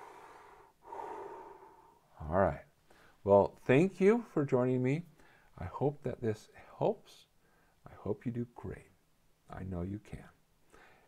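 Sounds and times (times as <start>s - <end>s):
man breathing deeply: 0.0s - 2.2s, 2.8s - 3.2s, 10.7s - 11.0s.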